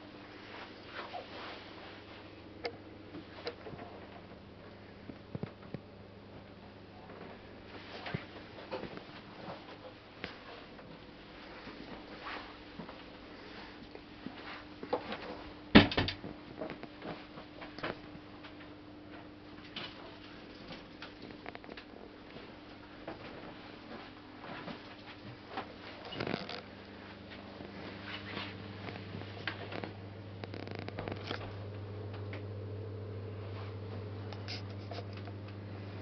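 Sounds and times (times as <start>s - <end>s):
steady low hum: 0.0s - 36.0s
faint rustles and clicks: 0.3s - 15.6s, 16.2s - 32.4s, 33.4s - 35.7s.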